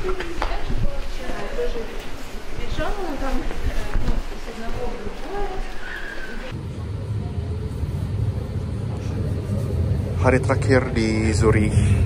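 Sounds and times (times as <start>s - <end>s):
street sound: 0.0s - 12.0s
tram rumbling from inside: 4.4s - 12.0s.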